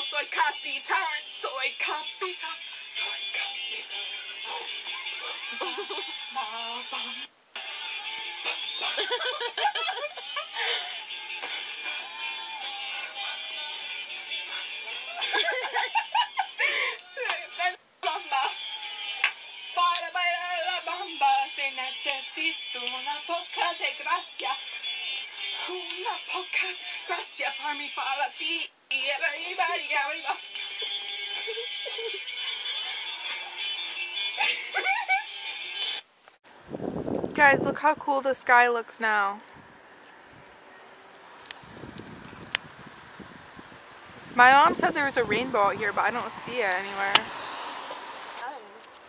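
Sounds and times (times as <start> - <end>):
girl singing: 0.0 - 4.0, 16.7 - 18.7, 19.8 - 24.7, 25.6 - 32.2
pop song through phone speaker: 0.0 - 36.0, 44.4 - 47.4
wind buffeting microphone: 36.6 - 38.4, 41.6 - 47.5.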